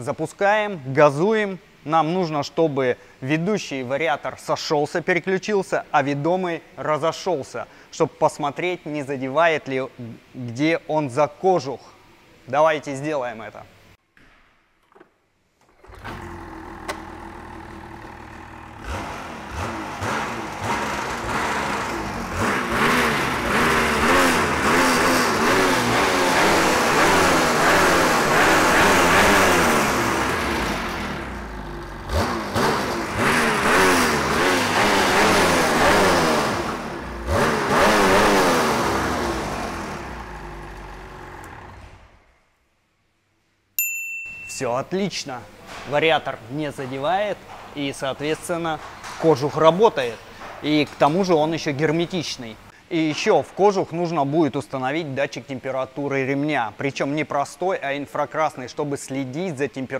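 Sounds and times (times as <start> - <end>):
snowmobile engine revving: 15.9 - 42.2.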